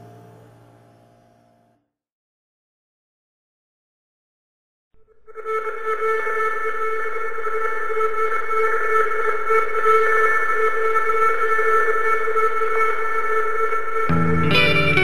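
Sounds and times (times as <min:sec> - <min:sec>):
post-rock drone chord: 0:00.0 - 0:01.6, 0:05.5 - 0:15.0.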